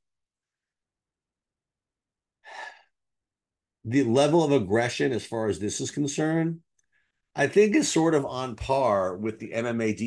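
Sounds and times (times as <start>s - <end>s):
man breathing: 2.4s - 3.0s.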